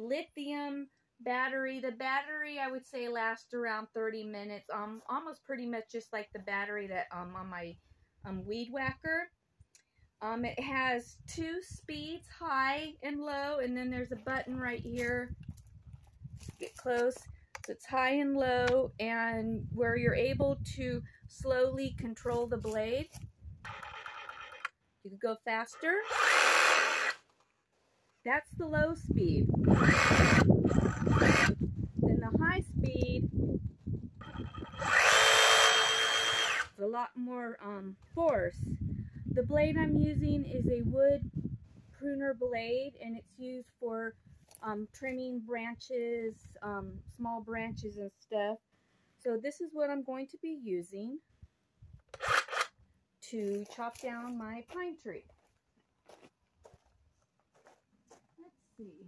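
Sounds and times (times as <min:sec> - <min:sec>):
reciprocating saw running: 0:23.6 - 0:24.7, 0:25.6 - 0:27.2, 0:29.5 - 0:31.6, 0:34.2 - 0:36.8, 0:52.1 - 0:52.7.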